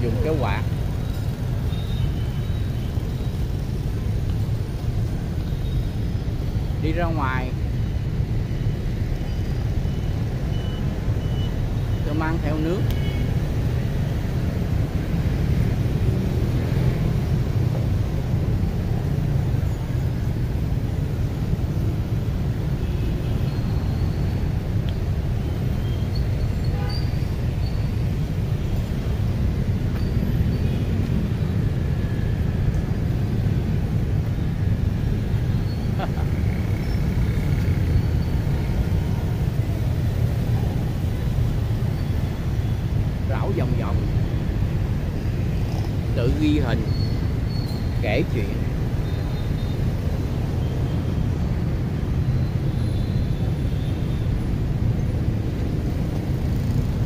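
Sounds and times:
distant city traffic: 0:00.0 - 0:57.0.

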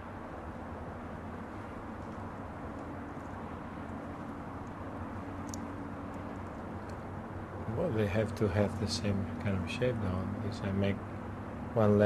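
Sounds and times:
low background rumble and hum: 0:00.0 - 0:12.0.

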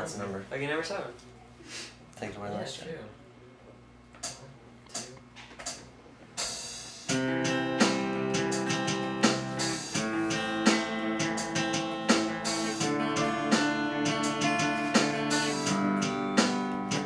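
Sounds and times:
electric guitar strumming chords: 0:07.1 - 0:17.0
electronic keyboard: 0:07.1 - 0:17.0.

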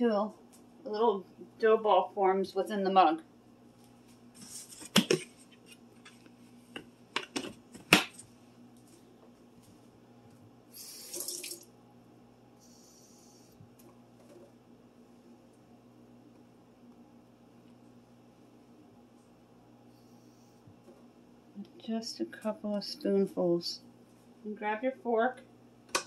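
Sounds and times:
steady low hum: 0:00.0 - 0:26.0
running water splash: 0:11.0 - 0:11.7.

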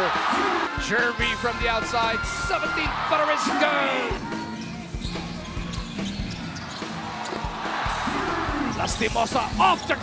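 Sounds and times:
arena music: 0:00.0 - 0:10.0.

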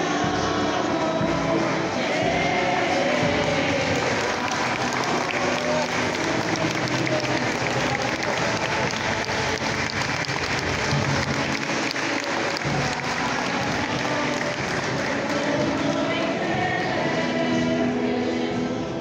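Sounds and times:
crowd applauding: 0:00.0 - 0:16.7
music: 0:00.0 - 0:19.0
voices: 0:00.0 - 0:19.0.

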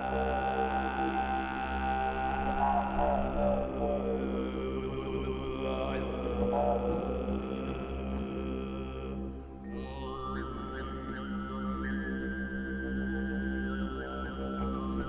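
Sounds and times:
throat singing drone with overtones: 0:00.0 - 0:15.0.

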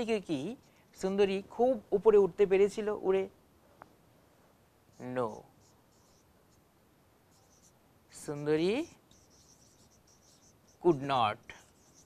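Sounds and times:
marker squeaking on whiteboard: 0:04.9 - 0:06.7, 0:07.3 - 0:12.0
man speaking: 0:05.0 - 0:05.5, 0:10.8 - 0:11.7.

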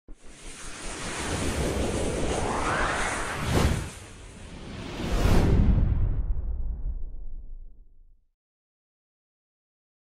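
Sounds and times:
rushing whoosh: 0:00.2 - 0:07.1.

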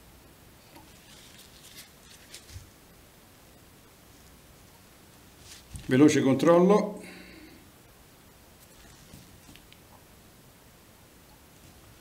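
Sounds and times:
faint scratching and rustling: 0:00.6 - 0:02.9, 0:04.0 - 0:06.1, 0:08.5 - 0:10.0.

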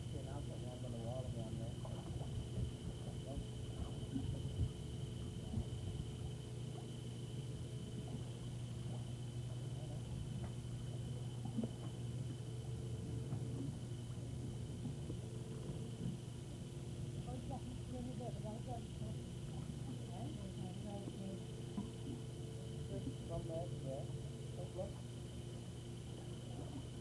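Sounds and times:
low hum: 0:00.0 - 0:27.0.

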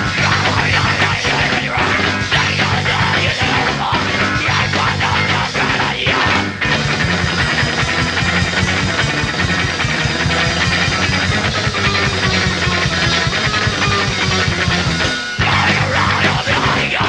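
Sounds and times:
bass guitar: 0:00.0 - 0:17.0
distorted electric guitar: 0:00.0 - 0:17.0
fast driving drums: 0:00.0 - 0:17.0.

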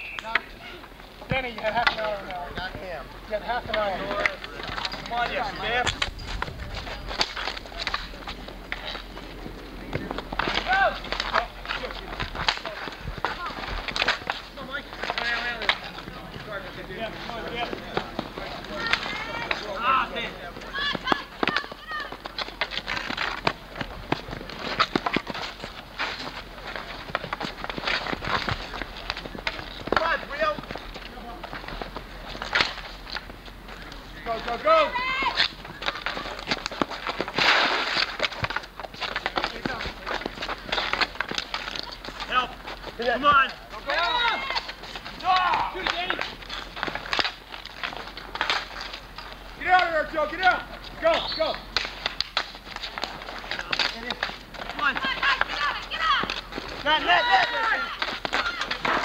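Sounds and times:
hockey sticks clacking on ball: 0:01.2 - 0:59.0
players shouting: 0:08.6 - 0:13.6, 0:14.8 - 0:22.3, 0:34.1 - 0:36.4, 0:42.2 - 0:46.3, 0:54.7 - 0:59.0.

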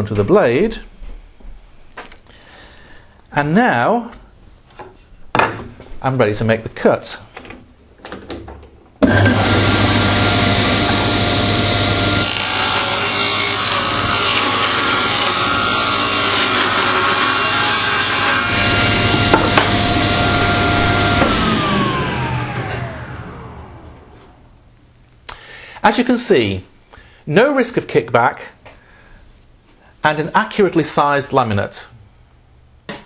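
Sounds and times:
saw ripping wood: 0:09.0 - 0:23.0
saw blade running down whine: 0:09.0 - 0:24.2
table saw running: 0:09.0 - 0:24.4.

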